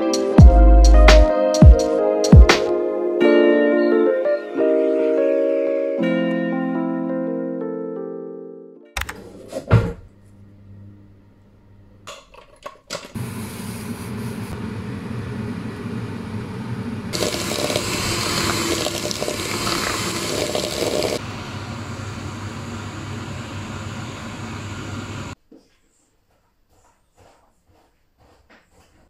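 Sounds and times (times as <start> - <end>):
electric hand mixer whisking: 17.2 - 25.4.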